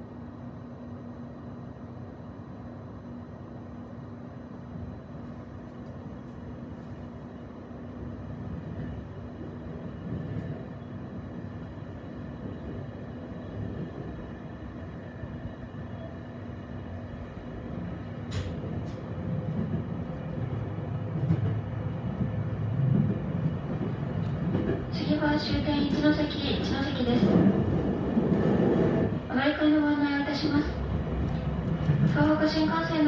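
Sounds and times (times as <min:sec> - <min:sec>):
train wheels rumbling on rail: 0:04.6 - 0:33.0.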